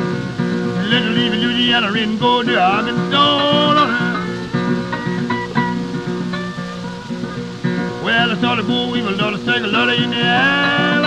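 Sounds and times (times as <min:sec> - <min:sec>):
acoustic blues guitar: 0:00.0 - 0:11.0.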